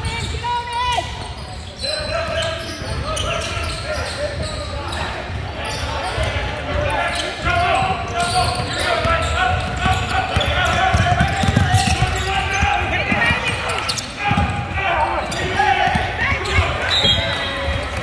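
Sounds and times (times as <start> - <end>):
voices of players and spectators: 0.0 - 18.0
basketball dribbling on wood floor: 9.1 - 13.5.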